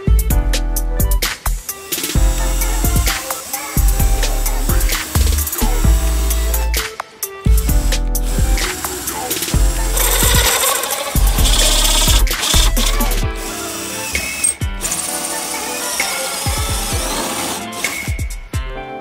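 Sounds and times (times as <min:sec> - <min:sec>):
music with beat and bass: 0:00.0 - 0:03.2, 0:03.8 - 0:13.6
cordless drill cutting plastic: 0:01.8 - 0:06.9, 0:07.7 - 0:18.3.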